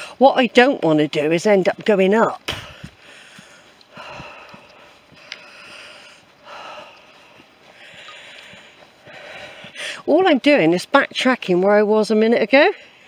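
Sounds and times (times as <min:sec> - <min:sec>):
footfalls on woodland path: 0:00.6 - 0:12.2
person breathing noisily: 0:02.5 - 0:10.1.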